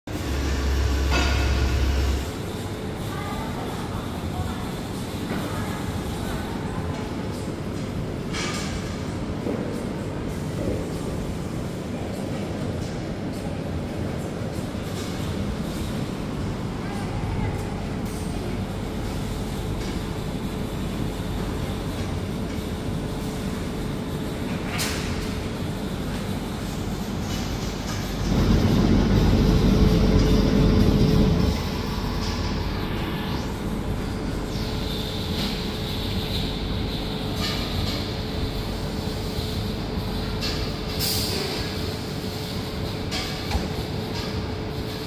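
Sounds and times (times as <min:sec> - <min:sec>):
low mechanical whirring: 0:00.1 - 0:02.7, 0:26.7 - 0:37.3
machine humming: 0:00.1 - 0:02.7, 0:26.1 - 0:40.3.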